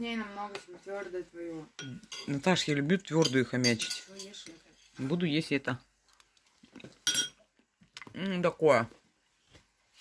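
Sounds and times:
metal spoon clinking on china: 1.8 - 2.4, 3.0 - 4.6, 7.0 - 7.4
faint handling sounds: 8.8 - 10.0.

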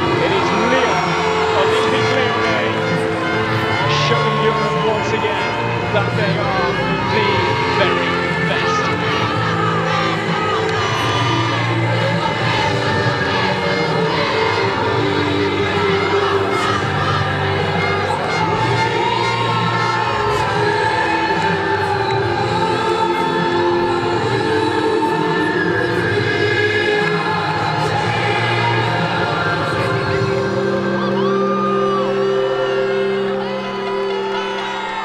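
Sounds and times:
music with singing voices: 0.0 - 35.0
stadium crowd cheering: 0.0 - 35.0.

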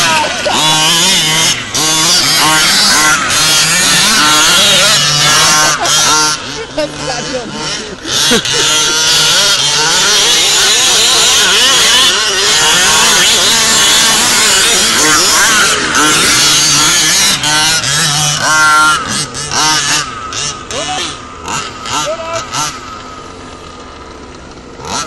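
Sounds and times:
buggy engines revving: 0.0 - 25.0.

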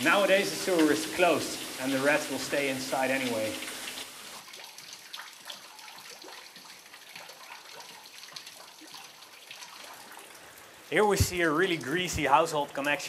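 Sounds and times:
water drips: 0.0 - 13.0
water trickling: 0.0 - 13.0.

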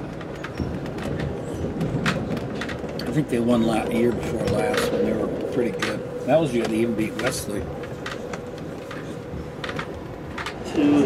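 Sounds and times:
faint track clicks: 0.0 - 11.0
train car rolling rumble: 0.0 - 11.0.

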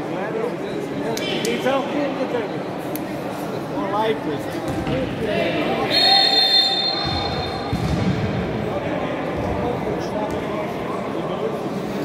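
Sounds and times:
referee's whistle long blast: 5.9 - 7.6.

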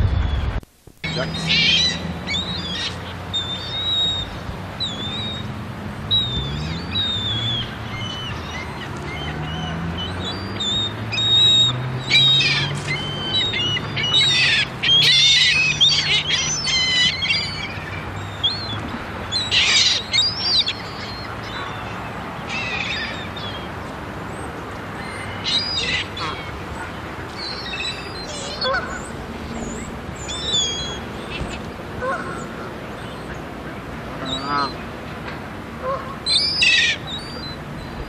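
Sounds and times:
geese and gulls squawking: 6.1 - 23.6, 25.0 - 34.9, 35.8 - 38.0.

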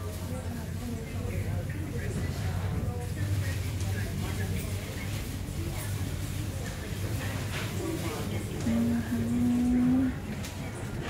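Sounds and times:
murmur of busy shop: 0.0 - 11.0
person humming: 8.7 - 10.2.

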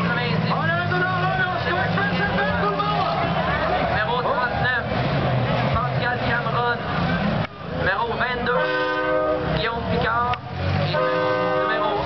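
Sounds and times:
car engines running: 0.0 - 12.0
horn blasts: 8.5 - 9.8, 10.8 - 12.0.

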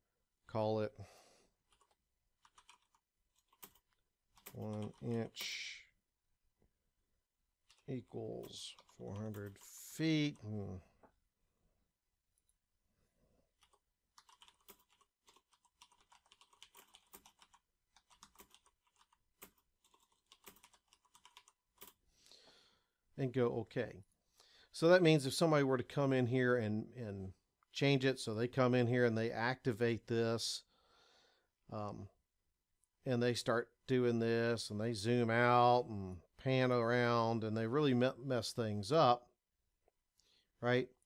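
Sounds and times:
keyboard typing: 1.6 - 5.6, 7.6 - 10.6, 13.5 - 22.0.

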